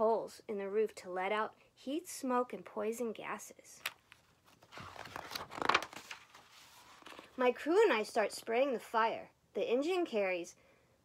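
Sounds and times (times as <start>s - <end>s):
book pages turning: 3.8s - 7.4s.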